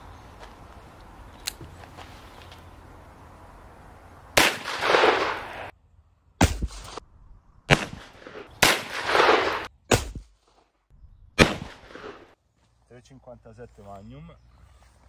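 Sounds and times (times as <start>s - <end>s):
revolver gunshots: 4.4s - 5.7s, 7.7s - 10.3s, 11.3s - 12.4s.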